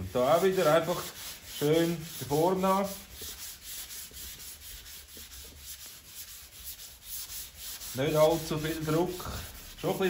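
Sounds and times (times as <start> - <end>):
hand sanding scratchy rubbing: 0.0 - 10.0.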